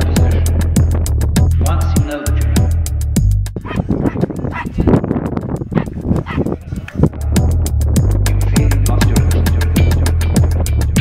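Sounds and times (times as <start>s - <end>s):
electronic music with heavy bass: 0.0s - 11.0s
small dogs barking: 3.6s - 5.0s, 5.7s - 7.0s.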